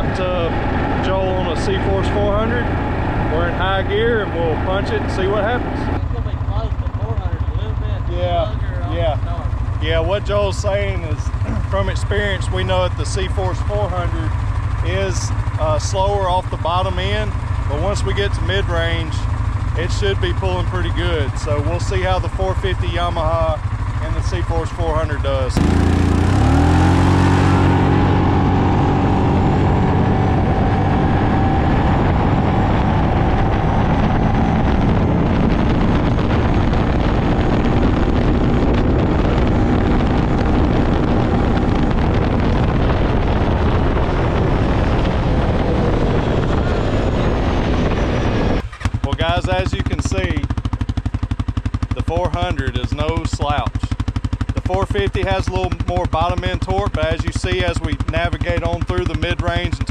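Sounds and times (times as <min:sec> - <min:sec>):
wind noise on microphone: 0:00.0 - 0:06.0, 0:07.0 - 0:50.8
voices: 0:00.0 - 0:25.8, 0:49.0 - 0:50.5, 0:52.0 - 0:54.0, 0:54.6 - 0:59.9
atv engine idling: 0:00.0 - 0:47.6, 0:48.6 - 0:59.9
atv engines revving: 0:00.0 - 0:59.9.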